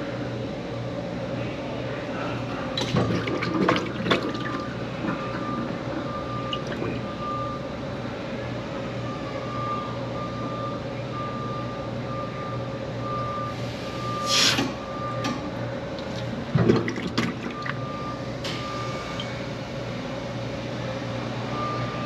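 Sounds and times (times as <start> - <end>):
steady machine hum: 0.0 - 22.0.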